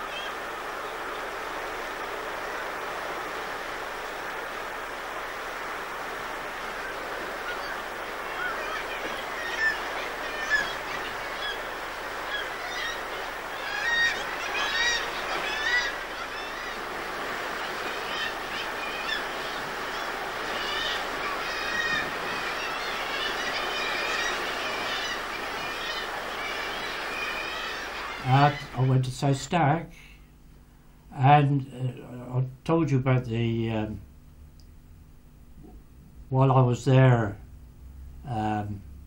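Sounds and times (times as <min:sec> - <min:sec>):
seabirds calling: 0:00.0 - 0:29.4
surf washing: 0:00.0 - 0:29.7.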